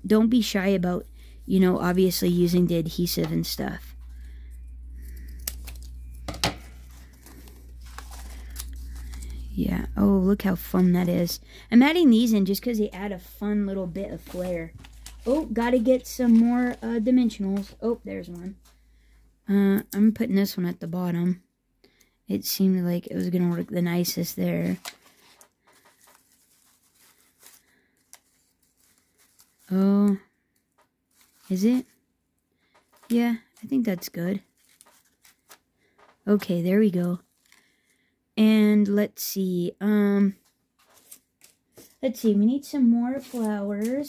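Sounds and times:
steady low hum: 0:00.0 - 0:20.1
paper rustling and crinkling: 0:05.0 - 0:09.9, 0:12.6 - 0:18.7, 0:24.4 - 0:32.0, 0:32.7 - 0:36.2, 0:36.8 - 0:37.9, 0:40.3 - 0:44.0.

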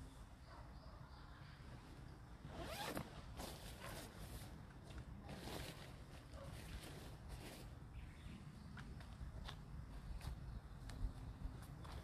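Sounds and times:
zipper pulled: 0:02.5 - 0:04.2.

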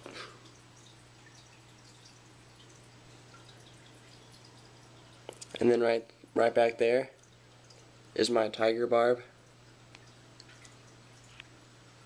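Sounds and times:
aquarium filter humming: 0:00.0 - 0:12.0
water dripping and trickling: 0:00.0 - 0:12.0.

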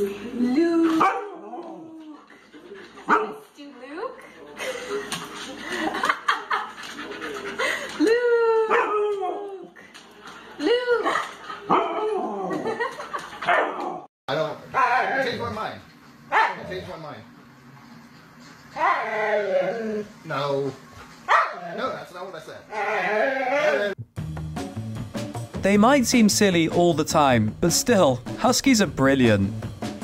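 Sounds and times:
husky yowling and howling: 0:01.0 - 0:02.2, 0:08.4 - 0:09.7, 0:11.7 - 0:12.7, 0:14.8 - 0:15.4, 0:18.8 - 0:20.1, 0:22.7 - 0:23.9.

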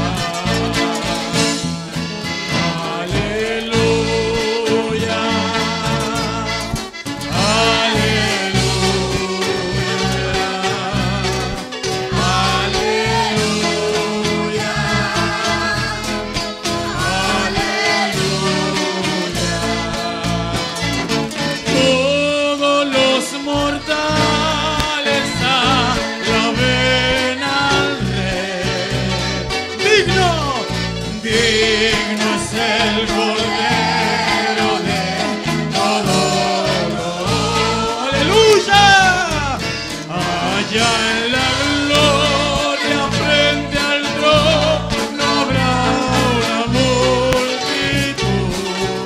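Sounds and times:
band with bass line: 0:00.0 - 0:49.0
congregation singing worship song: 0:00.0 - 0:49.0
instrumental accompaniment with beat: 0:00.0 - 0:49.0.

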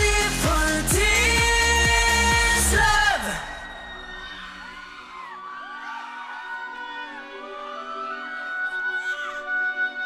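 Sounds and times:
audience screaming and cheering: 0:00.0 - 0:10.0
pop song music: 0:00.0 - 0:10.0.

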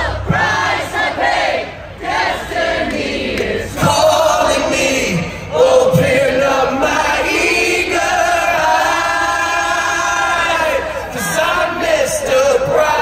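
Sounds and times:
crowd singing in unison: 0:00.0 - 0:13.0.

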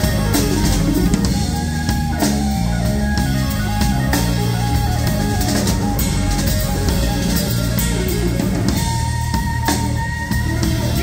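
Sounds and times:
electric guitar solo: 0:00.0 - 0:11.0
rock drum kit: 0:00.0 - 0:11.0.

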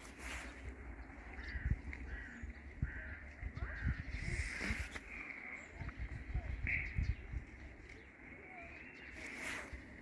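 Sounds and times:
low microphone rumble: 0:00.5 - 0:10.0.

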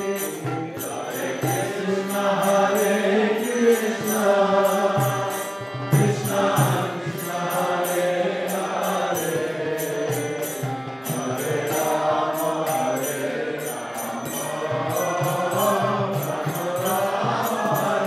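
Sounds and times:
harmonium: 0:00.0 - 0:18.0
man singing devotional chant: 0:00.0 - 0:18.0
small hand cymbals: 0:00.0 - 0:18.0.

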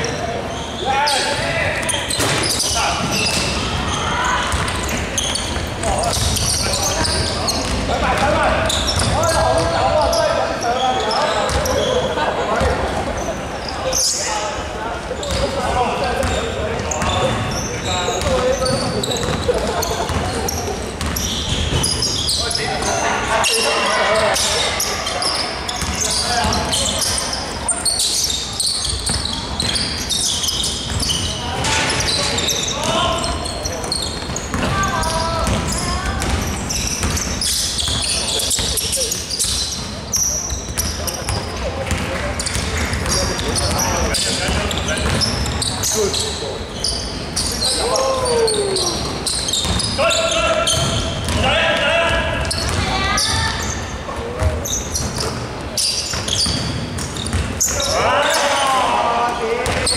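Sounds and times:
players calling out: 0:00.0 - 0:59.9
basketball bouncing on hardwood: 0:40.7 - 0:43.2, 0:52.5 - 0:52.8.

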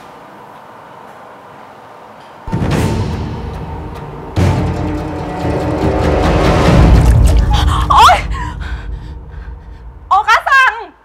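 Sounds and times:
woman crying out: 0:07.4 - 0:08.8.

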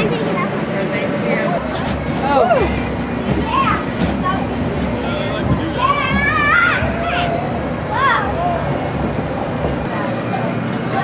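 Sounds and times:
steady low hum: 0:00.0 - 0:11.0
children shouting: 0:05.0 - 0:08.8.

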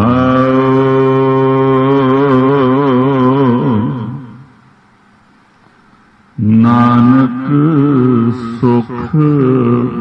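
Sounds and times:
man chanting: 0:00.0 - 0:04.6, 0:06.4 - 0:10.0.

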